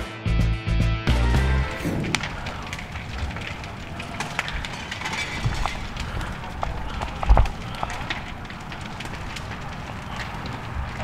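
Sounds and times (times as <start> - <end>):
house fire crackling: 1.2 - 11.0
heavy low thump: 1.6 - 2.4
sharp pops: 1.6 - 11.0.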